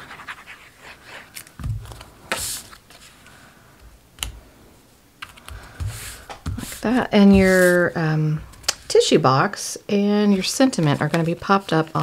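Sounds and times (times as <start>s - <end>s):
paper rustling and sliding: 0.0s - 3.3s, 5.6s - 7.9s.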